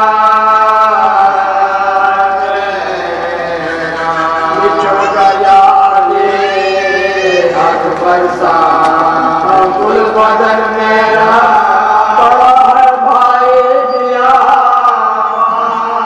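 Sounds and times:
backing voices holding long notes: 0:00.0 - 0:16.0
men singing an elegy: 0:00.0 - 0:16.0.

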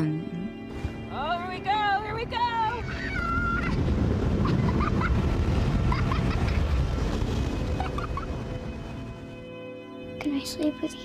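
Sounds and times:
child squealing: 0:02.8 - 0:03.8.

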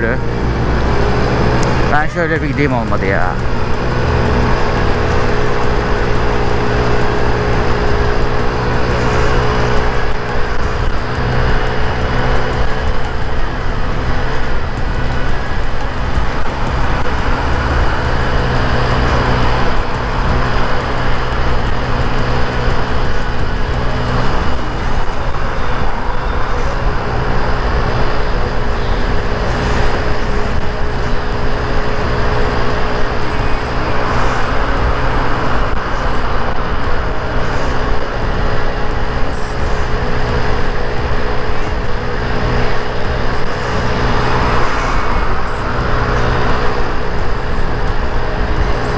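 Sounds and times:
road and rushing air noise: 0:00.0 - 0:48.9
scooter engine cruising: 0:00.0 - 0:48.9
surrounding traffic: 0:00.0 - 0:48.9.

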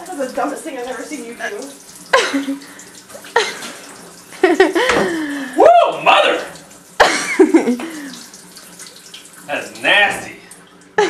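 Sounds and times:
tap running into sink: 0:03.0 - 0:05.2.

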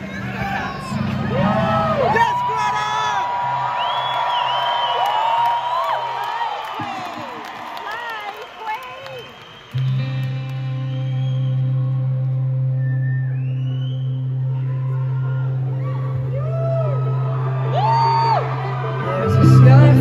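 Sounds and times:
crowd whooping: 0:00.0 - 0:12.1, 0:12.7 - 0:20.0.

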